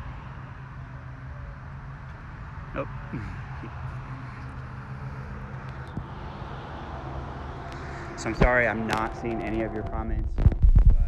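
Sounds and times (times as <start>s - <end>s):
faint hum: 0.0s - 11.0s
low outdoor rumble: 0.0s - 11.0s.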